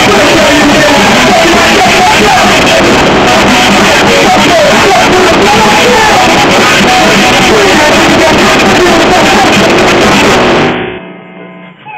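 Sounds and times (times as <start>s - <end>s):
drums: 0.0s - 10.8s
bass guitar: 0.0s - 11.9s
distorted electric guitars: 0.0s - 11.9s.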